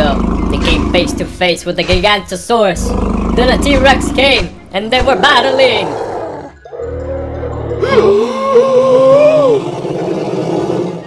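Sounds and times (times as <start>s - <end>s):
rumbling growl: 0.0s - 1.5s, 2.8s - 8.4s, 9.0s - 11.0s
dinosaur roaring: 2.8s - 4.2s, 5.0s - 11.0s.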